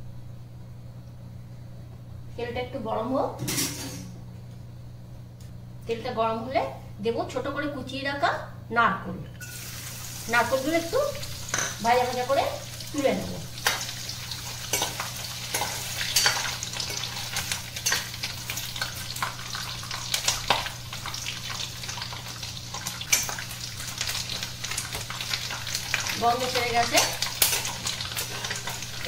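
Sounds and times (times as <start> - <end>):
steady low hum: 0.0 - 29.0
food sizzling in hot oil: 9.4 - 29.0.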